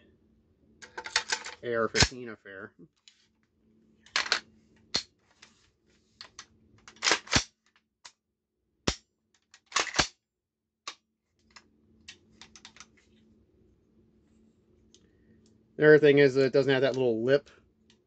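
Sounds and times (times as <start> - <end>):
metallic rifle clicks: 9.6 - 10.1.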